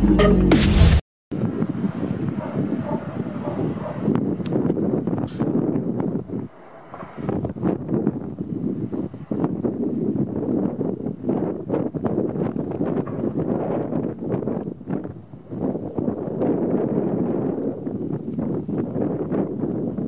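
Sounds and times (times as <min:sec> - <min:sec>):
wind buffeting microphone: 0:01.3 - 0:20.0
sharp clicks and cracks: 0:04.4 - 0:05.4.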